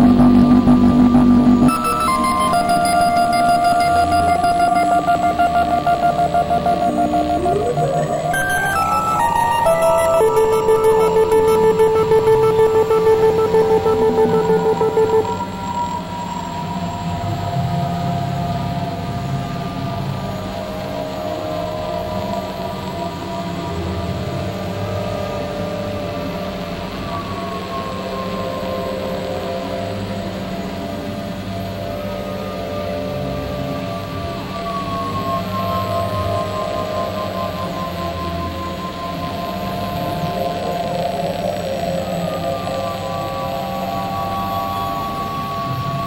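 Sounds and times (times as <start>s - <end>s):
loud wavering synth tone: 0.0s - 46.0s
synthesizer drone tones: 0.0s - 46.0s.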